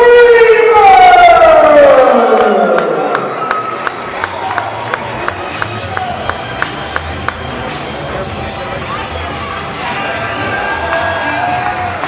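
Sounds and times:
announcer calling over loudspeakers: 0.0 - 3.1.

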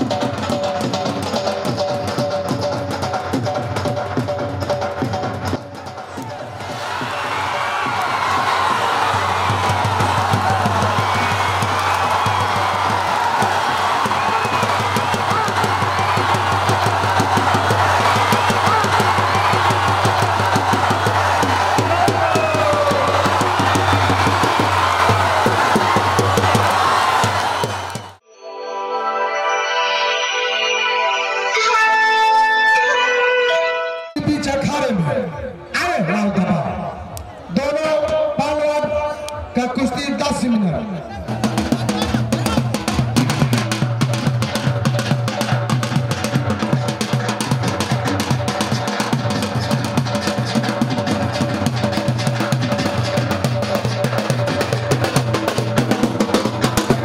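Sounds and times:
drum-heavy music: 0.0 - 28.2, 41.2 - 57.0
rapid drumming: 0.0 - 28.2, 41.2 - 57.0
crowd shouting: 5.7 - 28.2, 41.0 - 57.0.

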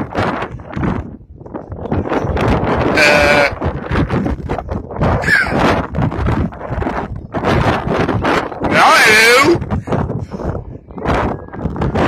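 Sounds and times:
wind buffeting microphone: 0.0 - 12.0
person shouting high-pitched: 8.7 - 9.6.

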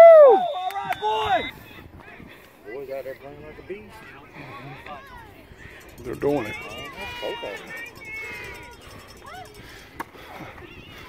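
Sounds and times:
faint voices outdoors: 0.0 - 11.0.

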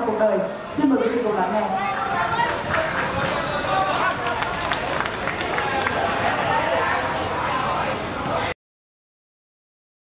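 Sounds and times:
people talking: 0.0 - 8.6.

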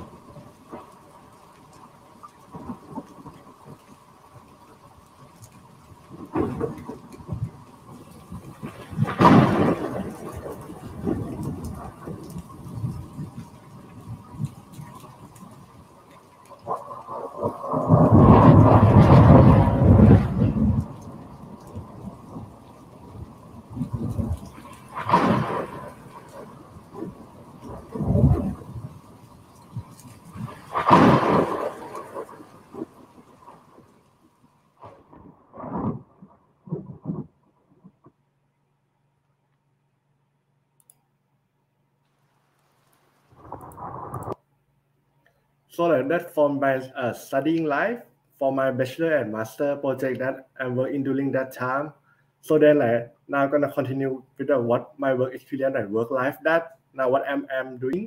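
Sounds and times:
deep rumbling booms: 17.6 - 29.0.

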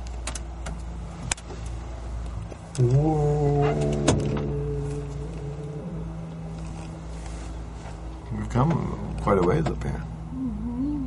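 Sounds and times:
gondola low rumble and hum: 0.0 - 11.0.

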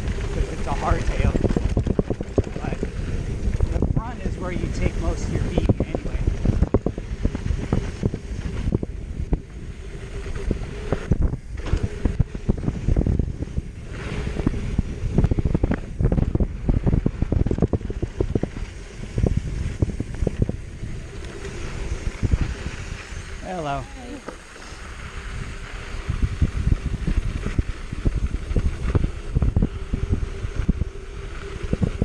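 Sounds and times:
bike rattling and knocking: 0.0 - 23.3
bike tyres rolling over dirt: 0.0 - 32.0
wind rumbling on microphone: 0.0 - 32.0.

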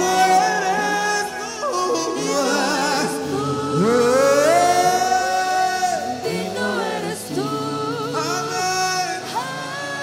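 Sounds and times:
gospel singing: 0.0 - 10.0.

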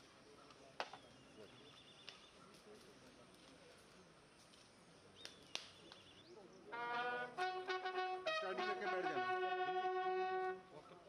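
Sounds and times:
bugle call: 6.7 - 10.7.

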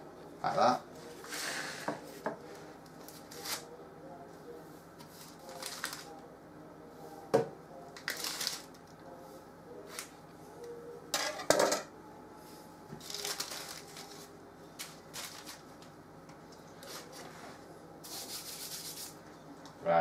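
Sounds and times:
baking paper rustling: 5.0 - 6.2, 8.0 - 8.8, 13.0 - 15.9.

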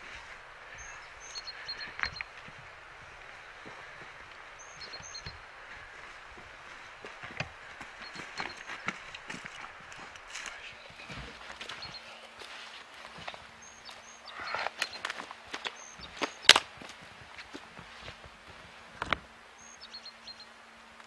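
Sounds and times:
boots crunching on scree: 0.0 - 19.3.

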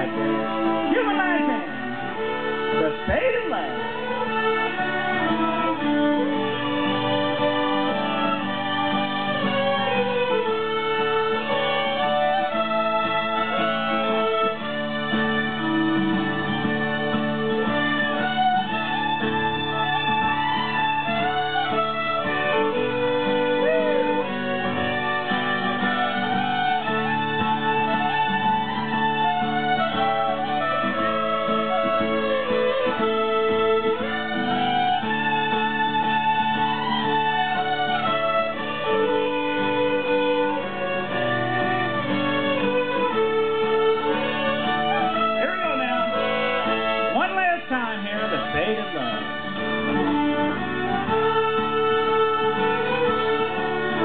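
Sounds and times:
fiddles playing in unison: 0.0 - 54.0.

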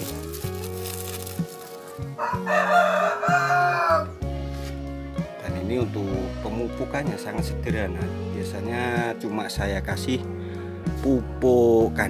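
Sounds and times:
low background music: 0.0 - 12.0
rooster crowing: 2.0 - 4.2.

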